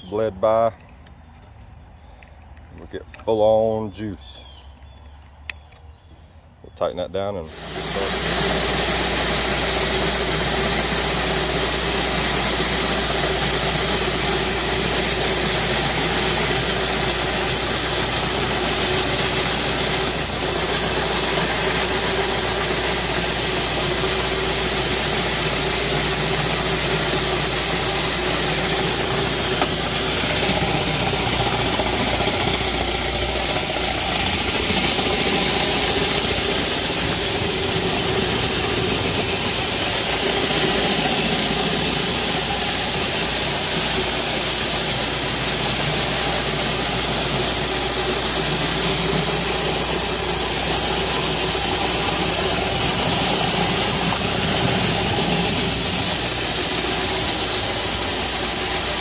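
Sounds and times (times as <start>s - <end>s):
high-pressure water jets hissing: 7.4s - 59.0s
mechanical hum: 7.4s - 59.0s.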